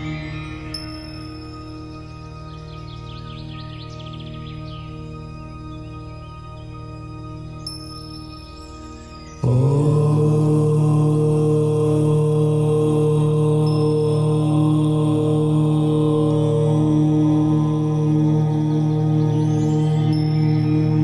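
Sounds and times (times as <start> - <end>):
low steady om chant: 0.0 - 21.0
soft ambient meditation music: 0.0 - 21.0.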